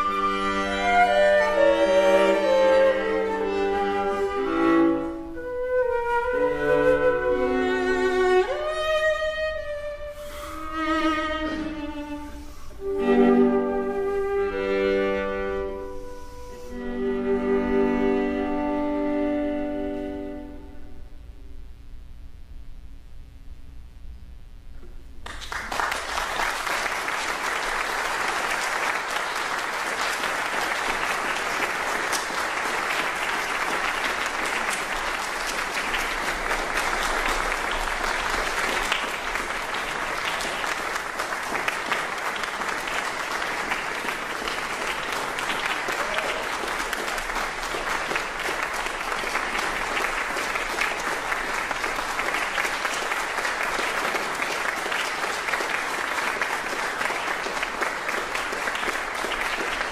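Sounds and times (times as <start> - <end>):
audience applause: 25.2 - 59.9.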